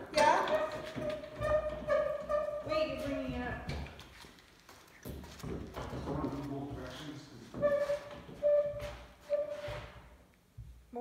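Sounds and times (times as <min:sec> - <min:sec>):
metal creaks: 0:00.2 - 0:04.0.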